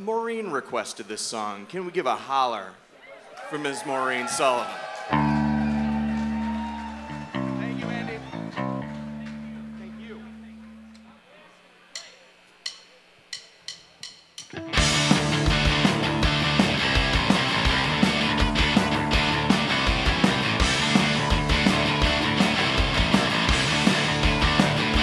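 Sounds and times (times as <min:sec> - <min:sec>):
loud rock band playing: 0:05.1 - 0:09.9, 0:14.5 - 0:25.0
electric guitar chord ringing: 0:05.2 - 0:11.2.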